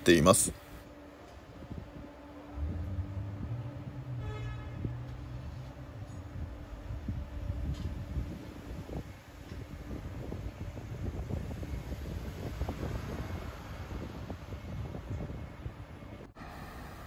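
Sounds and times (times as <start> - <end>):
city traffic hum: 0.0 - 17.0
wind buffeting microphone: 1.4 - 17.0.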